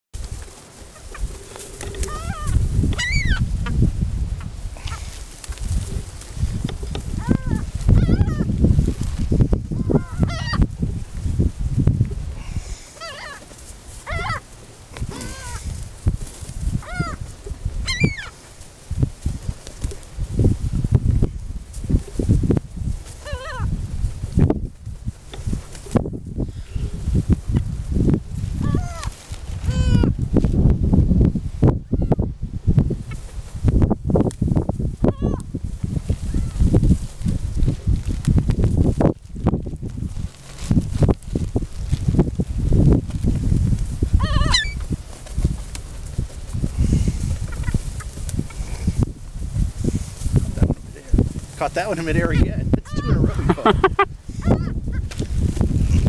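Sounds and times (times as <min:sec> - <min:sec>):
wind rumble on microphone: 0:00.2 - 0:56.0
gulls calling: 0:00.8 - 0:03.8, 0:07.2 - 0:08.5, 0:09.8 - 0:10.7, 0:12.9 - 0:14.5, 0:15.1 - 0:15.7, 0:16.8 - 0:18.4, 0:28.6 - 0:30.1, 0:44.2 - 0:44.8.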